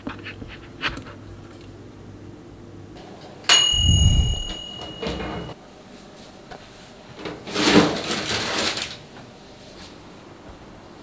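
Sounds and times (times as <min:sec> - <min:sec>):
oven door opening clunk: 0:04.3 - 0:05.6.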